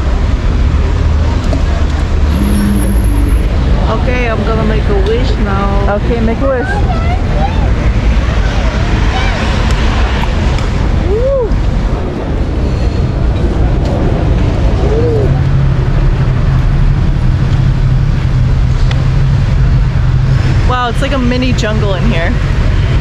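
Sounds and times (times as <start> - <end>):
low hum: 0.0 - 23.0
traffic rumble: 0.0 - 23.0.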